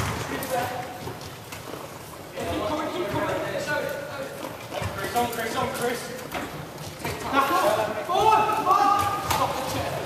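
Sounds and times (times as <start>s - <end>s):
players calling out in a hall: 0.0s - 10.0s.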